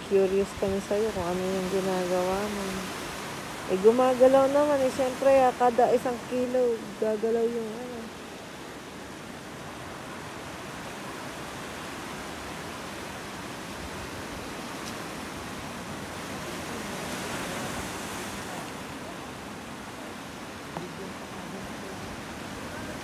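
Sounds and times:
ocean surf over rocks: 0:00.0 - 0:23.0.

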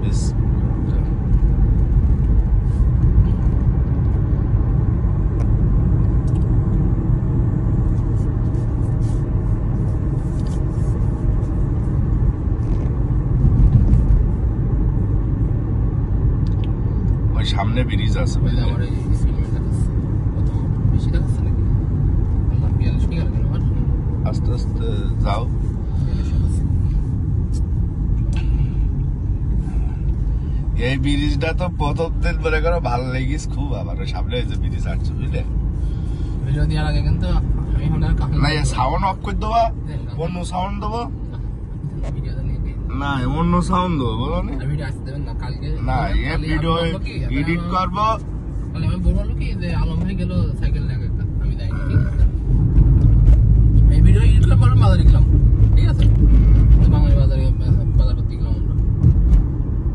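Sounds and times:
car engine rumble: 0:00.0 - 0:59.9
road noise: 0:00.0 - 0:59.9.

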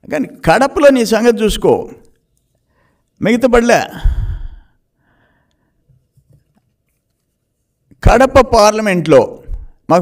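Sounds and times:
faint breath: 0:02.6 - 0:03.2, 0:03.9 - 0:06.0.

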